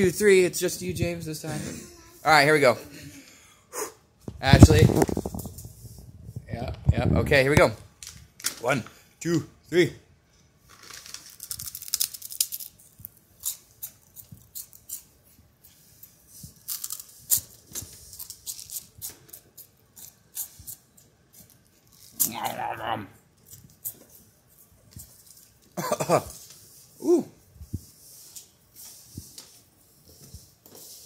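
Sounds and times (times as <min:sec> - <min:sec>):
short vocal sound: 0:22.2 - 0:23.2, 0:27.0 - 0:27.4.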